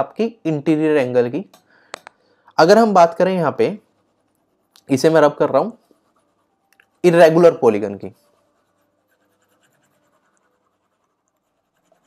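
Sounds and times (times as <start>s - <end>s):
stylus scratching on drawing tablet: 2.8s - 12.0s.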